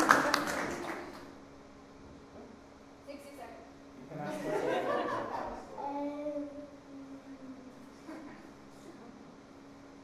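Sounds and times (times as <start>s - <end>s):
audience clapping: 0.0s - 1.4s
faint steady hum: 0.0s - 10.0s.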